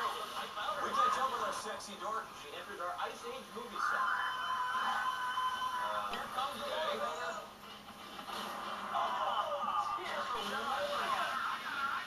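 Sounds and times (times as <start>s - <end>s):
television music with held note: 0.0s - 12.0s
television voices: 0.0s - 12.0s.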